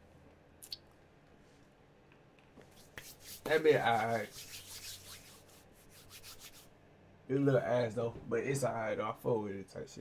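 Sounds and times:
hands rubbing together: 0:02.6 - 0:06.7.

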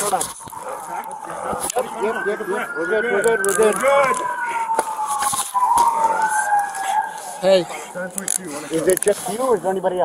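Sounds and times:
police siren wailing: 0:00.0 - 0:10.0.

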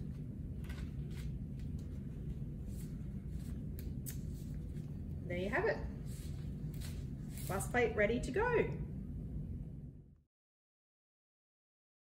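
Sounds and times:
low room hum: 0:00.0 - 0:10.3
paper rustling and scraping: 0:00.6 - 0:04.9, 0:06.0 - 0:07.7.

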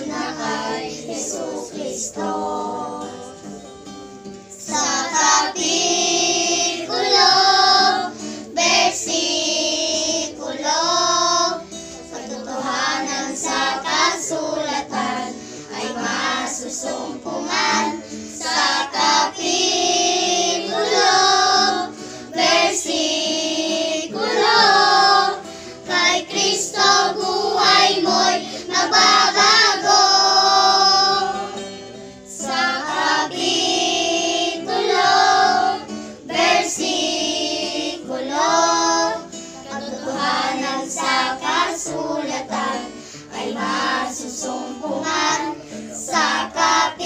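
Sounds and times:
children singing: 0:00.0 - 0:03.9, 0:04.5 - 0:47.0
acoustic guitar: 0:00.0 - 0:47.0.

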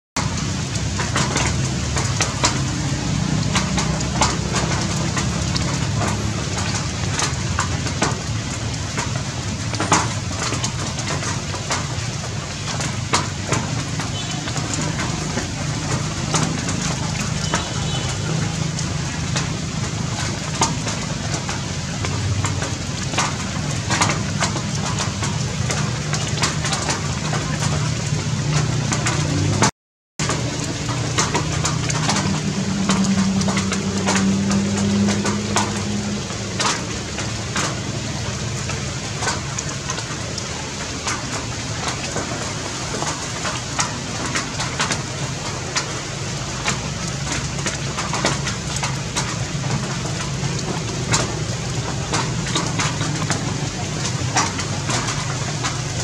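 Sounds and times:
dense crackling and rustling: 0:00.2 - 0:56.0.

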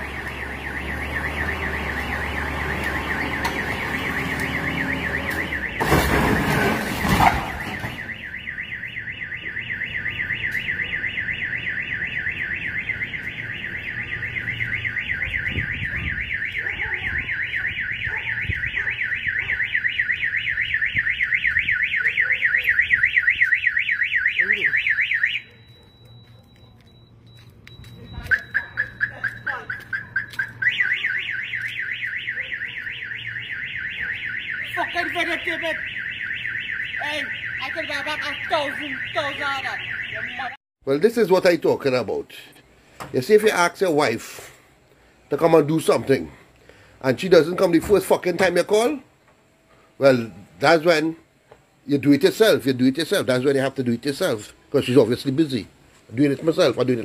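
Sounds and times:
car alarm siren warbling: 0:00.0 - 0:27.2, 0:27.8 - 0:40.6.

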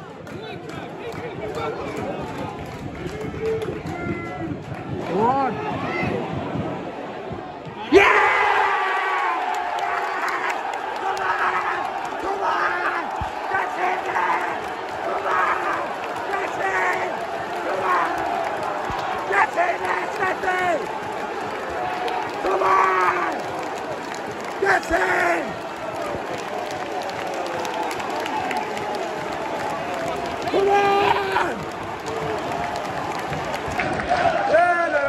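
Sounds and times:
crowd cheering and shouting: 0:00.0 - 0:35.0.

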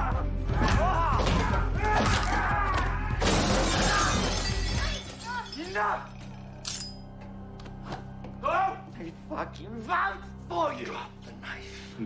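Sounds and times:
glass shattering: 0:03.2 - 0:07.0.

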